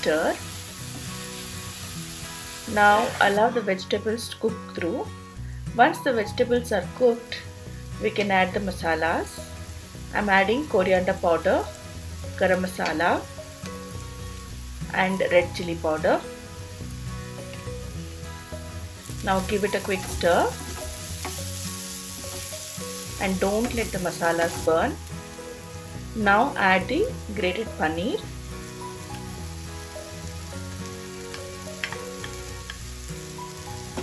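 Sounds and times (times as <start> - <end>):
soft background music: 0.0 - 34.0
vegetables sizzling in oil: 0.0 - 34.0.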